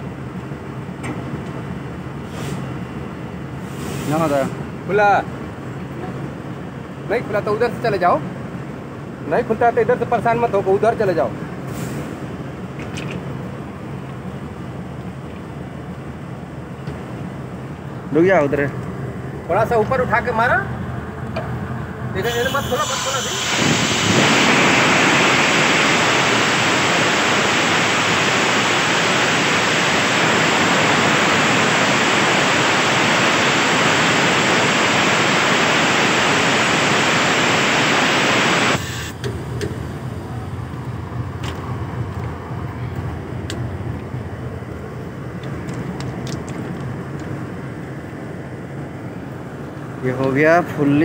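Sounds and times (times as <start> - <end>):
compressed air hissing loudly: 3.6 - 4.6, 22.2 - 39.2.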